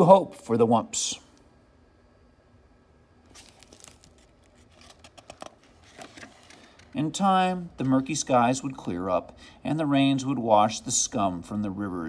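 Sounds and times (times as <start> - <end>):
book page turning: 3.2 - 7.1.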